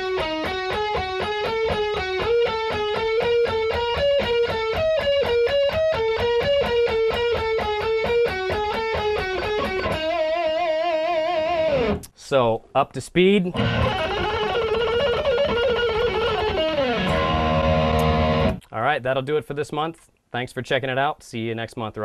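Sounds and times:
electric guitar playing scale: 0.0s - 12.1s, 13.5s - 18.6s.

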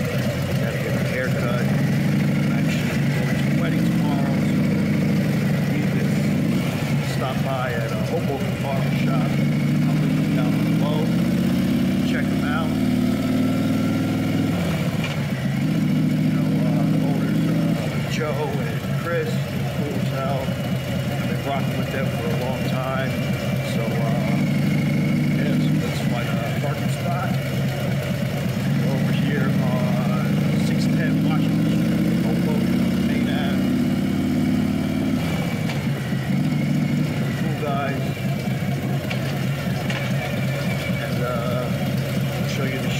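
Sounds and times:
motorcycle engine running: 0.0s - 42.9s.

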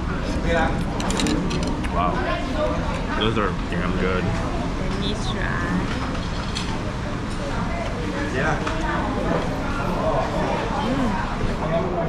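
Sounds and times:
people talking: 1.8s - 5.9s, 8.2s - 12.0s.

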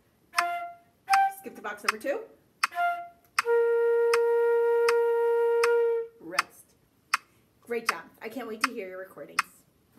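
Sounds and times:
flute playing held note: 0.4s - 1.4s, 2.7s - 6.1s
metronome clicks: 0.4s - 2.0s, 2.6s - 3.5s, 4.1s - 5.0s, 5.6s - 8.0s.

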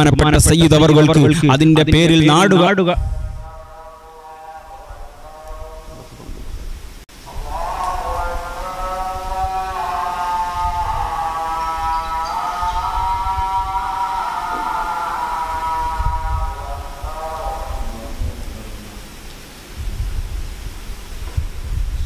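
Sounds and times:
man chanting: 0.0s - 6.5s, 7.1s - 19.4s.

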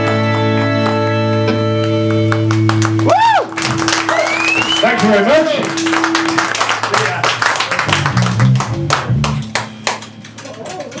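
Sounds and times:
audience clapping and cheering: 0.0s - 11.0s
bass guitar: 0.0s - 11.0s
electric guitar: 0.0s - 11.0s.

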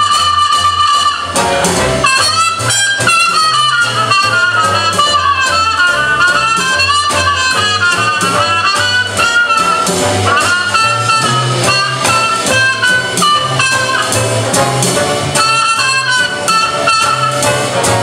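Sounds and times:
jazz band playing: 0.0s - 18.0s
trumpet solo: 0.0s - 18.0s.

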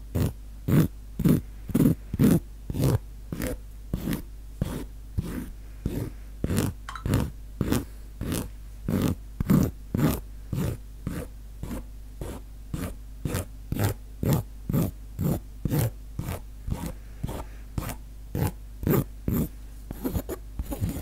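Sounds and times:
scratchy strokes near microphone: 18.9s - 21.0s.

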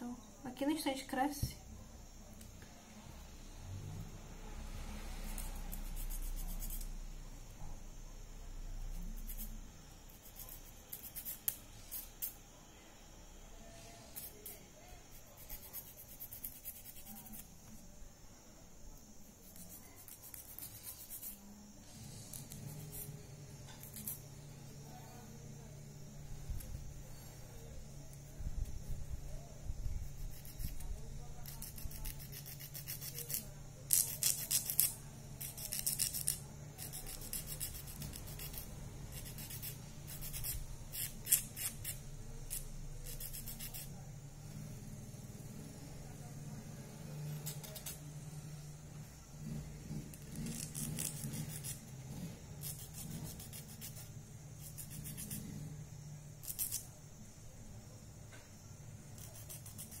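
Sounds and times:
nail file rasping on fingernails: 5.2s - 6.9s, 8.9s - 12.4s, 14.0s - 17.5s, 19.4s - 21.4s, 22.2s - 23.2s, 23.8s - 24.3s, 30.0s - 43.9s, 47.3s - 48.0s, 49.5s - 55.6s, 56.4s - 56.9s, 59.2s - 60.0s.

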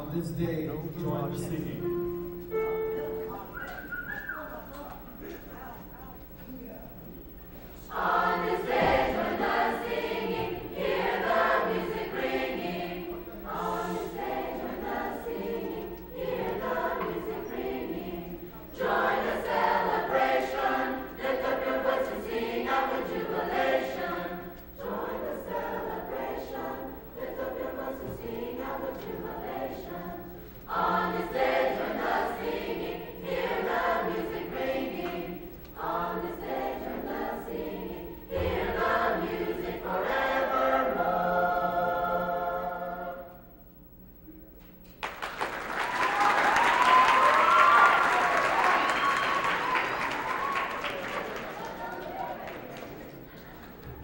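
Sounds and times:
mixed-voice choir singing: 7.5s - 43.7s, 45.4s - 54.0s.

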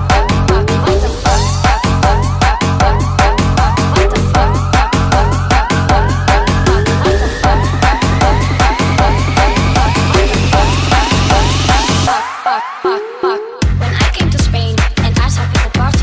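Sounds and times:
rising synth tone: 0.0s - 13.0s
siren-like synth sweeps: 0.0s - 13.4s
electronic dance music: 0.0s - 15.8s.

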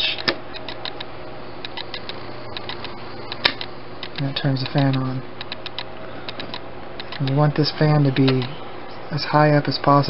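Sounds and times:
small fan spinning: 0.0s - 10.0s
sharp click: 0.2s - 7.4s, 8.2s - 8.6s.

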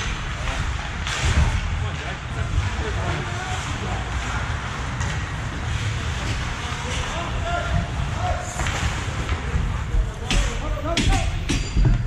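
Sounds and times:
echoing ice rink noise: 0.0s - 12.0s.

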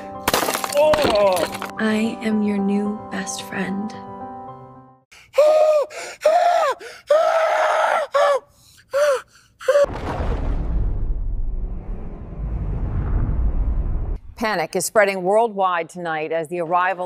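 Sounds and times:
man's strained vocal cries: 5.2s - 9.9s.

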